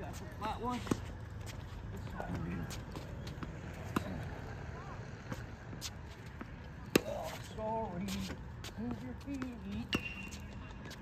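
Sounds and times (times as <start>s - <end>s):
tennis balls bouncing on hard court: 2.0s - 4.4s, 5.2s - 11.0s
racket striking tennis ball: 3.8s - 4.3s.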